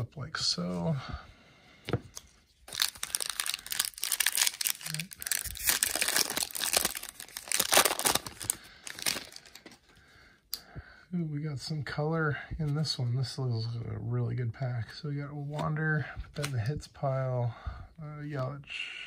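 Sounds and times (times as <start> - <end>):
plastic wrapper crinkling and tearing: 2.1 - 9.9.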